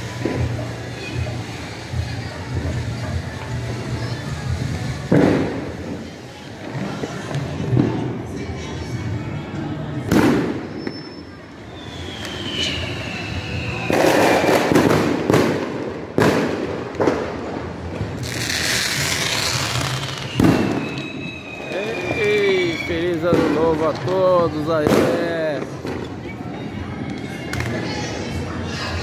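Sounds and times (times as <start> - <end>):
firework hiss: 0.0 - 8.3, 10.1 - 26.2
fireworks bangs: 0.0 - 8.4, 10.0 - 28.0
falling firework whistle: 10.1 - 16.4, 18.3 - 23.7.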